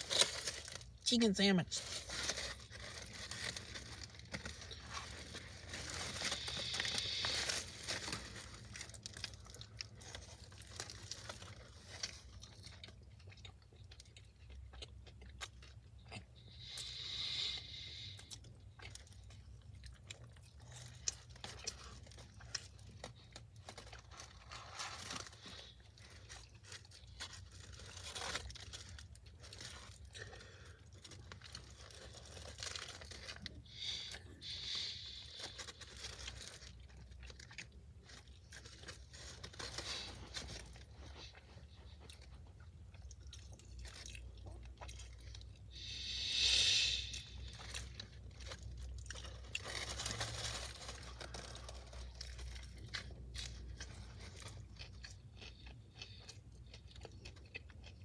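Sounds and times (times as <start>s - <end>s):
foil wrapper rustling: 0.0s - 12.8s, 20.6s - 41.4s, 45.7s - 54.6s
chewing and crunching food: 0.0s - 58.0s
low steady hum: 0.0s - 58.0s.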